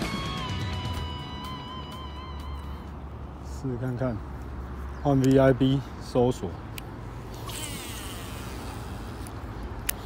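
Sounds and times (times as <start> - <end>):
fishing reel whirring whine: 7.3 - 9.3.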